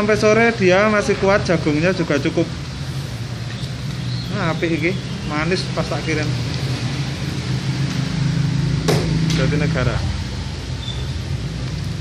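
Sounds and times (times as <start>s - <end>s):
sharp knock: 8.8s - 9.4s.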